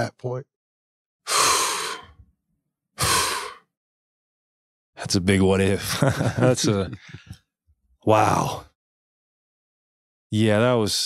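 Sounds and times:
man exhaling heavily: 1.3s - 2.2s, 3.0s - 3.6s.

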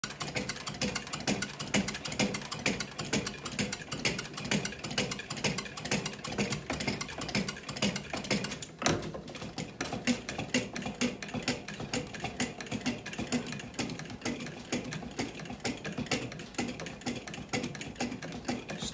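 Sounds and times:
bat rolling machine clicking: 0.0s - 18.9s.

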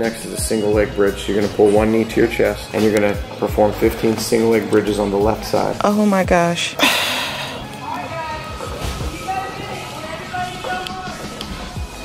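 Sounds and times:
soft background music: 0.0s - 12.0s
woman sighing heavily: 6.8s - 7.7s.

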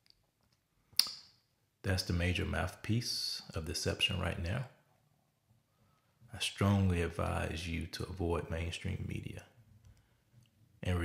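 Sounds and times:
sharp click: 1.0s - 1.3s
man speaking: 1.8s - 4.8s, 6.3s - 9.6s, 10.8s - 11.0s.

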